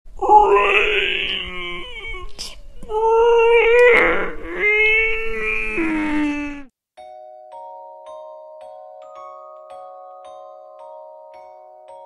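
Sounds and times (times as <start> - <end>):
person making zombie moans: 0.2 - 6.7.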